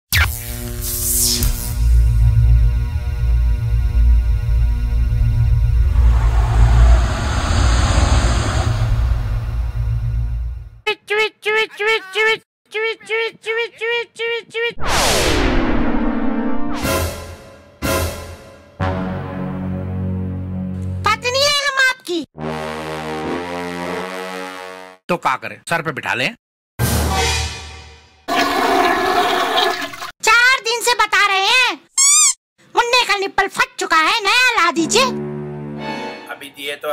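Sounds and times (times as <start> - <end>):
deep pulsing bass: 1.9 - 10.8
whooshing swell: 5.4 - 10.7, 14.8 - 16.9
downward sweep: 5.7 - 10.4, 14.8 - 17.0
toilet water flushing: 28.3 - 30.1.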